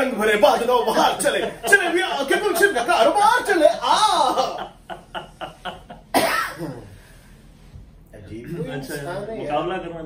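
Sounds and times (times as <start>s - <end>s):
man laughing hard: 3.6s - 6.2s.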